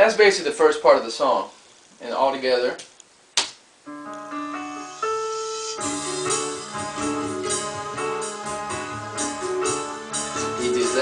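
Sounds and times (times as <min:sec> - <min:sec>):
piano and string chords: 0:03.9 - 0:11.0.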